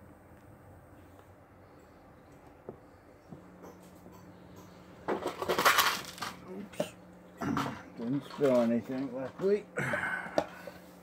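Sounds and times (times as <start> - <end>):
objects clattering and clinking: 3.6 - 10.8.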